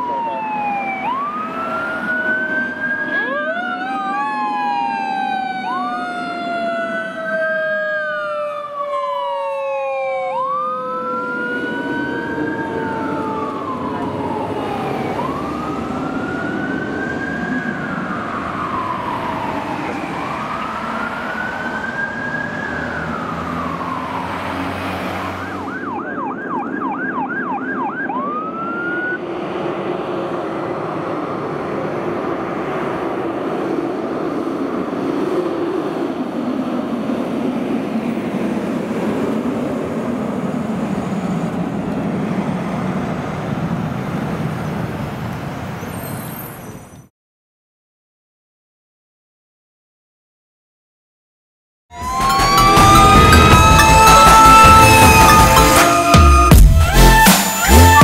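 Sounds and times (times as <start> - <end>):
lower siren tone gliding down: 0.0 - 44.2, 51.9 - 58.0
fire truck siren: 0.0 - 46.5, 51.9 - 58.0.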